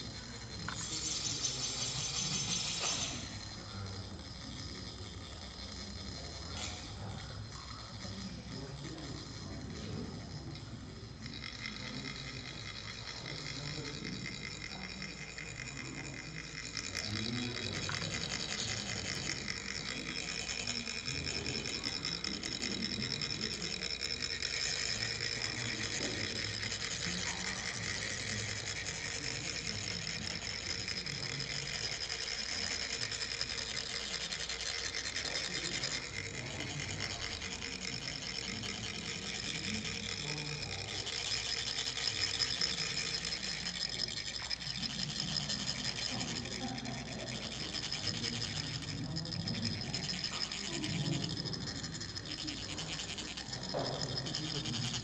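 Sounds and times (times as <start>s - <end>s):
metal rods rasping on funnels: 0.0s - 55.0s.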